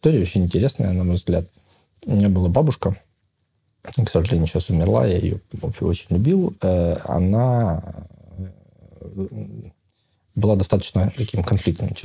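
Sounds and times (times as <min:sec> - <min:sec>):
man murmuring hesitation sounds: 0:06.6 - 0:09.7.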